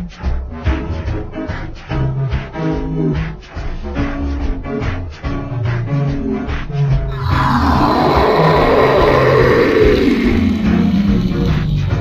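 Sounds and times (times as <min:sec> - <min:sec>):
background music: 0:00.0 - 0:12.0
rough monster roar: 0:07.1 - 0:12.0.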